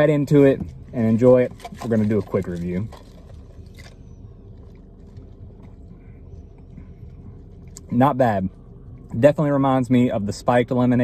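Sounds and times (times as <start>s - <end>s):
low hum in car cabin: 0.0s - 11.0s.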